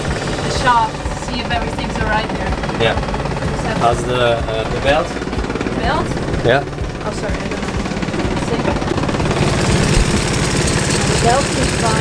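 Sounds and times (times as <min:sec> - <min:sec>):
marine diesel engine running: 0:00.0 - 0:12.0.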